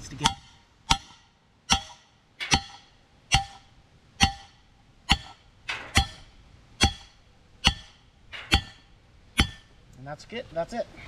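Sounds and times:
sledgehammer clanking on steel: 0.0s - 9.8s.

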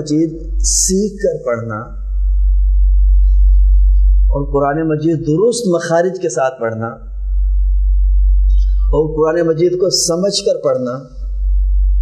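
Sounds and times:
steady low-pitched hum: 0.0s - 12.0s.

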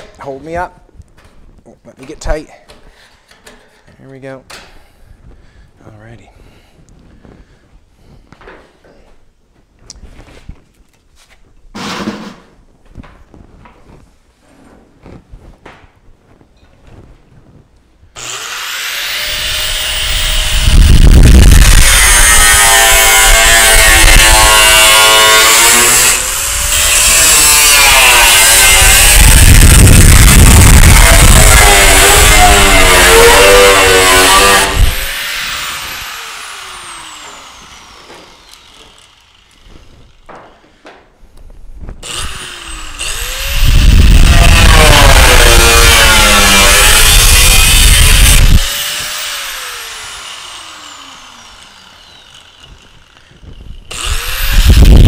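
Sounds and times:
angle grinder grinding metal: 18.2s - 40.7s, 42.0s - 55.0s.

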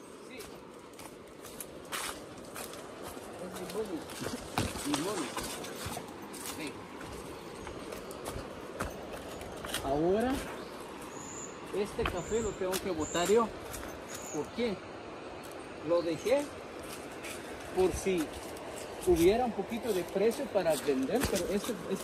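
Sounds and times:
footsteps crunching on dry leaves: 0.3s - 11.2s, 16.7s - 22.0s.

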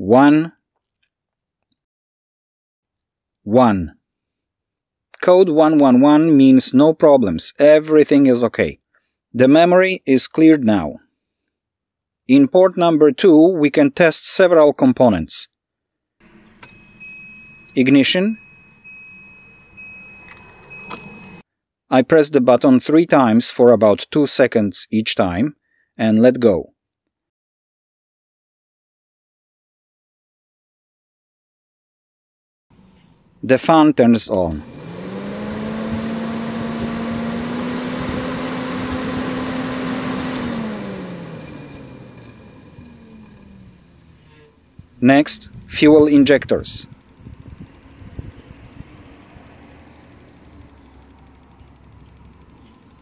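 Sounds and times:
ignition key clicks: 20.1s - 21.4s
electric cooling fan humming: 34.4s - 53.0s.

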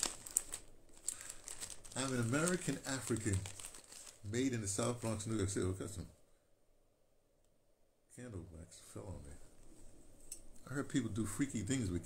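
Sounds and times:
light crinkling rustle: 0.0s - 5.6s.

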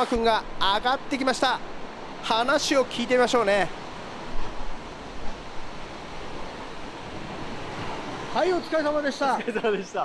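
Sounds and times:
surf washing up a beach: 0.1s - 10.0s.

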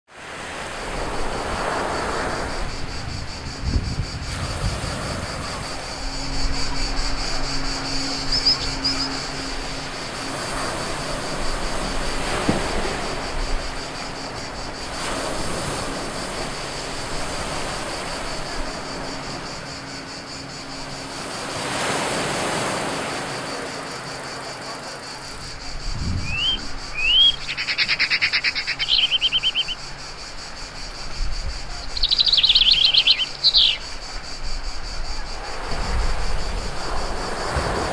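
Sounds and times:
wind: 0.0s - 37.9s
surf: 0.1s - 29.8s
insects chirping: 0.1s - 37.9s
songbird chirping and trilling: 7.3s - 9.5s, 26.2s - 29.8s, 31.8s - 34.0s.

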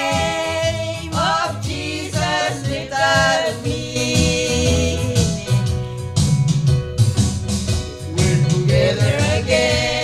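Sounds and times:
woman singing gospel song: 0.0s - 5.7s, 8.2s - 10.0s
electronic keyboard: 0.0s - 10.0s.

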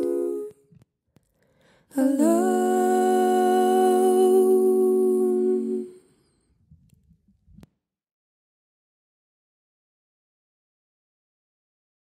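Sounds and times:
woman singing a cappella chord: 0.0s - 0.6s, 1.9s - 6.1s.

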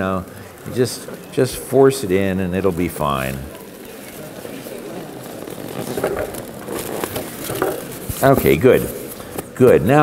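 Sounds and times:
balloons rubbing together: 2.6s - 9.3s.

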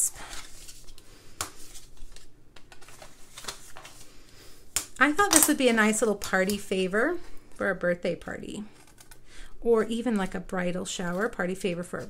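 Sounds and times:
paper rustling: 0.2s - 4.3s, 9.8s - 12.0s.

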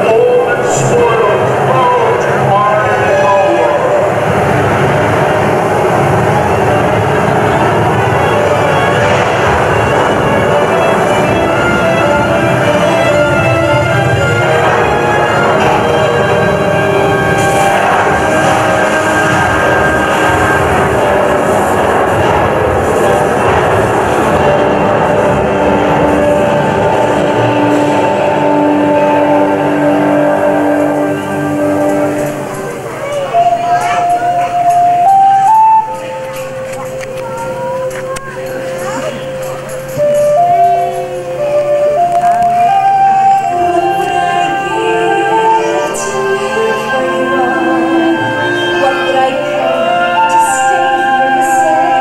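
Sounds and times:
roaring rumble over speakers: 0.0s - 34.8s
dramatic music with held notes: 0.0s - 52.0s.

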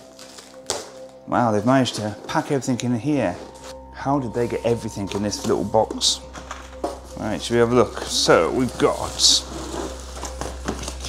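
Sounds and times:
plastic packaging crinkling: 0.0s - 2.3s, 6.3s - 11.0s.

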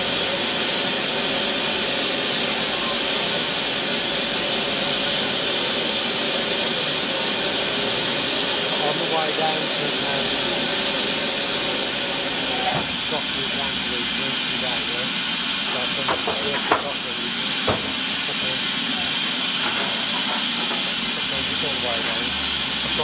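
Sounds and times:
steam hissing from locomotive: 0.0s - 23.0s
faint voices: 12.3s - 19.3s.

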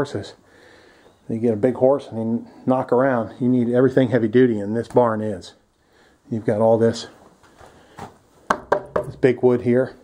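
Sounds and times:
knocks on wooden boards: 8.5s - 9.2s.

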